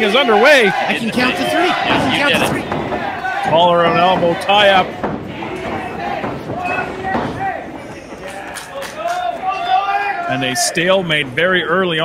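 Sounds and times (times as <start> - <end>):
audience voices: 0.0 - 12.0.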